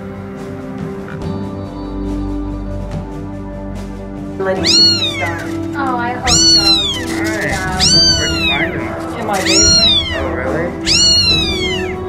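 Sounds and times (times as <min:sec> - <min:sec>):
kitten meowing: 0:04.5 - 0:12.0.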